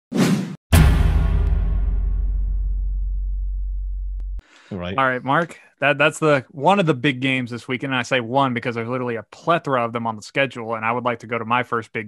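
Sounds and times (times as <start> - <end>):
deep boom with low rumble: 0.7 - 4.4.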